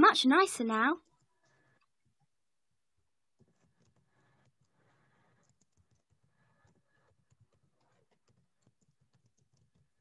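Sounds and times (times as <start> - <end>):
typing on computer keyboard: 3.4 - 10.0.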